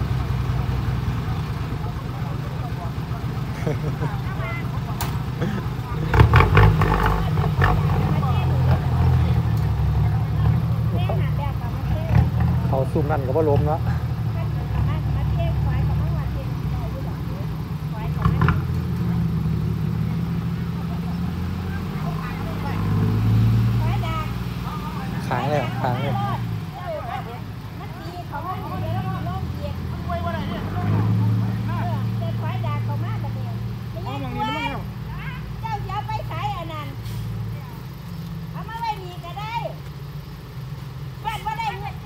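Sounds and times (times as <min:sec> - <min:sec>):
truck engine running: 0:00.0 - 0:42.0
people talking: 0:00.6 - 0:19.3, 0:20.5 - 0:37.9, 0:38.6 - 0:39.8, 0:41.2 - 0:42.0.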